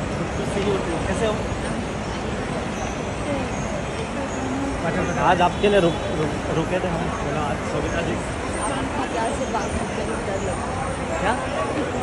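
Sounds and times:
hum of vehicles: 0:00.0 - 0:12.0.

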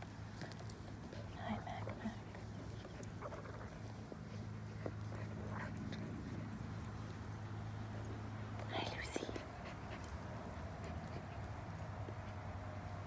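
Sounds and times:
small dogs whimpering: 0:01.8 - 0:06.3.

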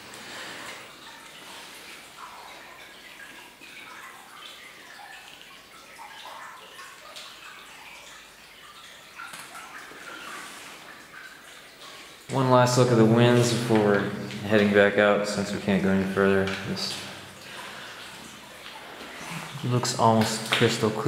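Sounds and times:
trickling water: 0:00.0 - 0:21.0
water dripping: 0:00.0 - 0:21.0.

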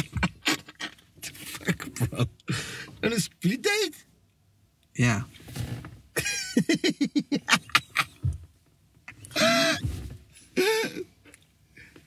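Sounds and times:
man laughing hard: 0:01.6 - 0:02.4, 0:06.2 - 0:08.4, 0:09.3 - 0:09.9, 0:10.6 - 0:11.1.

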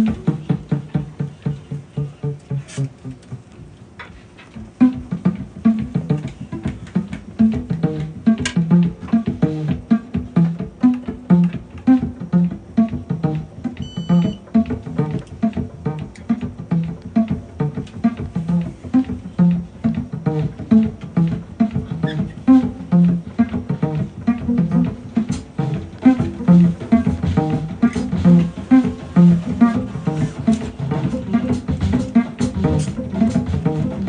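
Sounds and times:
drums: 0:00.0 - 0:34.0.

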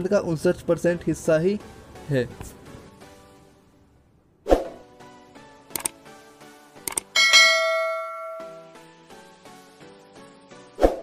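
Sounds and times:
soft background music: 0:00.0 - 0:11.0
bell chime ringing: 0:07.2 - 0:08.8.

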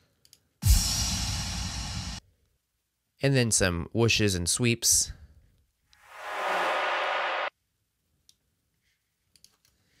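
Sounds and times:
faint mouse clicks: 0:00.0 - 0:00.5, 0:08.2 - 0:08.4, 0:09.3 - 0:09.8
hissing noise sweep: 0:06.0 - 0:07.5.

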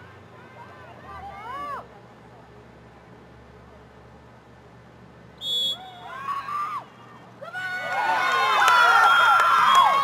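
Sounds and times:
referee's whistle blast: 0:05.4 - 0:06.1.

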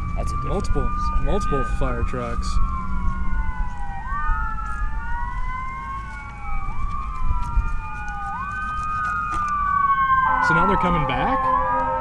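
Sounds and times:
emergency sirens wailing: 0:00.0 - 0:12.0.

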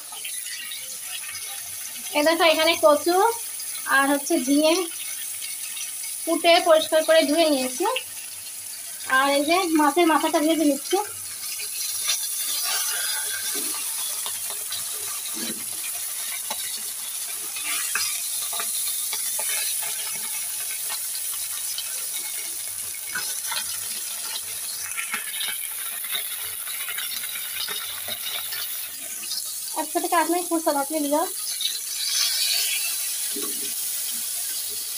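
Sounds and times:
fish sizzling in hot oil: 0:00.0 - 0:34.9
metal spatula scraping a pan: 0:11.4 - 0:21.0, 0:31.4 - 0:33.9.

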